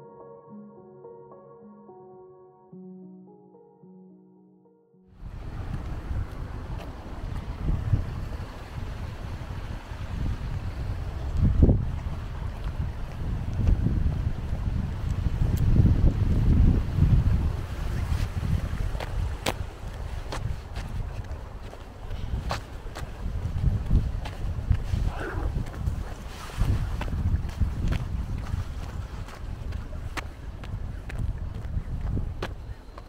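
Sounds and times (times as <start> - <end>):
wind buffeting microphone: 5.2 - 33.0.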